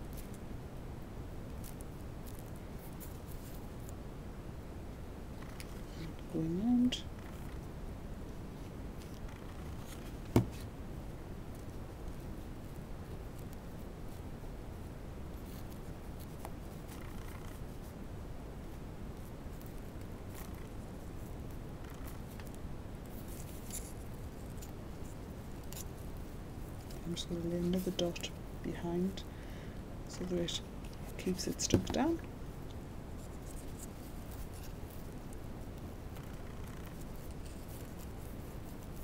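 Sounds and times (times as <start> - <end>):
low background hiss: 0.0 - 39.0.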